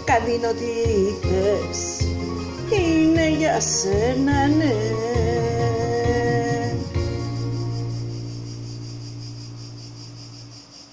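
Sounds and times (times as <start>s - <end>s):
held chord of backing track: 0.0s - 10.6s
high pulsing chirr: 0.0s - 10.9s.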